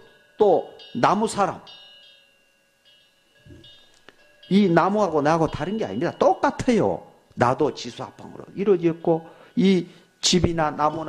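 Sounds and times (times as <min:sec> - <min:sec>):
faint metallic chime ringing: 0:00.0 - 0:11.0.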